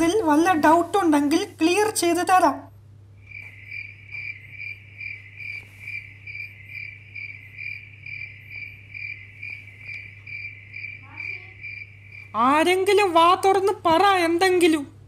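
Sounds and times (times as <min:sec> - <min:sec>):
low steady hum: 0:00.0 - 0:15.0
cricket chirping: 0:03.1 - 0:13.0.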